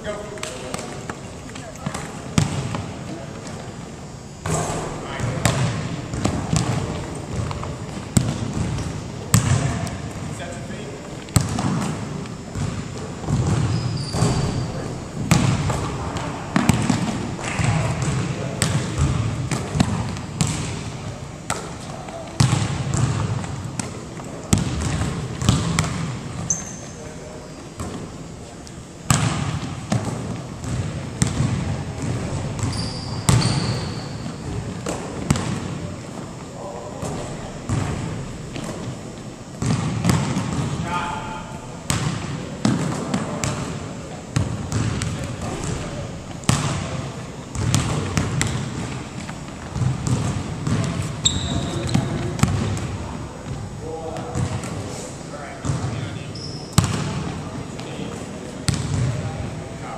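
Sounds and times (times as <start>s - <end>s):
basketballs bouncing on wood floor: 1.6s - 2.9s, 5.2s - 10.0s, 11.3s - 20.9s, 21.5s - 26.7s, 29.1s - 35.9s, 36.9s - 38.9s, 39.6s - 40.9s, 41.9s - 43.8s, 44.4s - 54.8s, 55.6s - 56.0s, 56.8s - 57.3s, 58.7s - 59.3s.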